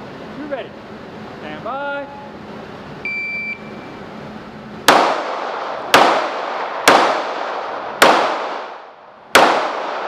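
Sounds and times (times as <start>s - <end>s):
shot timer beep: 3.0s - 3.8s.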